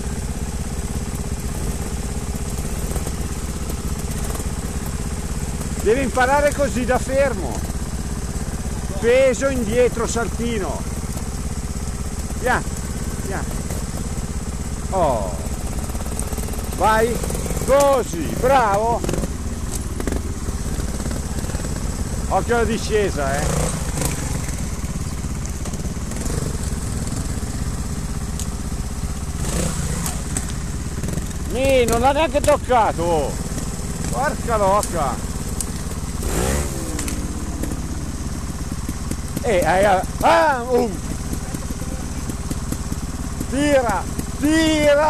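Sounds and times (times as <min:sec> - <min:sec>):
motorcycle engine rumbling: 0:00.0 - 0:45.0.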